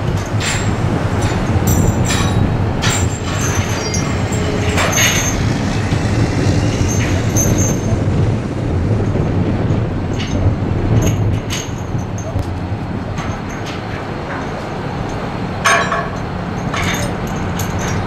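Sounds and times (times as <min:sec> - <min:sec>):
heavy machinery rumbling: 0:00.0 - 0:18.0
metallic clanks of chains and tools: 0:00.2 - 0:06.0, 0:06.8 - 0:07.9, 0:10.1 - 0:12.6, 0:13.2 - 0:18.0.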